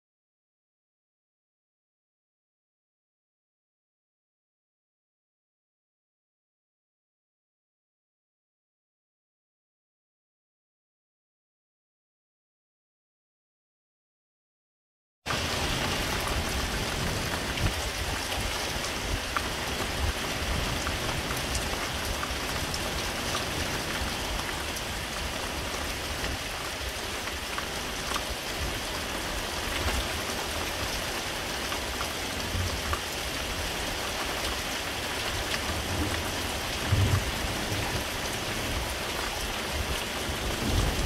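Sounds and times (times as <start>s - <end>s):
steady rain hiss: 15.3s - 41.0s.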